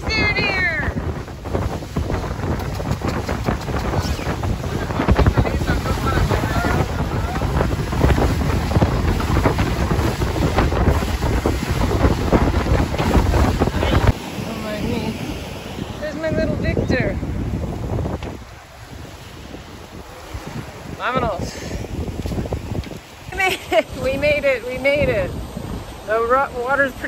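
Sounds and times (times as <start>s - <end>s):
hull knocking and splashing: 0.0s - 14.2s
wind buffeting microphone: 0.0s - 27.0s
outboard motor running: 1.3s - 18.0s.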